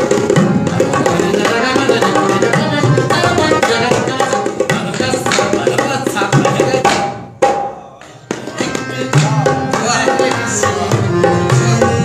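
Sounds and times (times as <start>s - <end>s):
tabla strokes: 0.0s - 12.0s.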